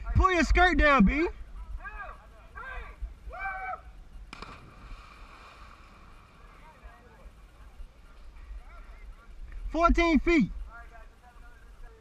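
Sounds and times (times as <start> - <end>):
splash into water: 4.3 - 6.5
faint voices: 5.8 - 12.0.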